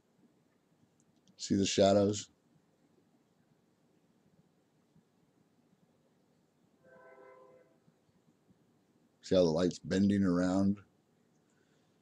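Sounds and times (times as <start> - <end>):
faint horn-like tone: 6.8 - 7.9.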